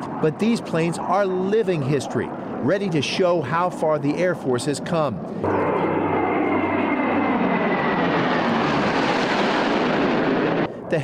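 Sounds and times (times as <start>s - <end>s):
propeller aircraft engines droning: 0.0s - 11.0s.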